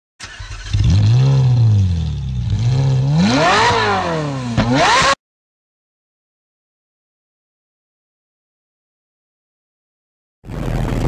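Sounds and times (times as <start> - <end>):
car engine revving: 0.2 - 5.2.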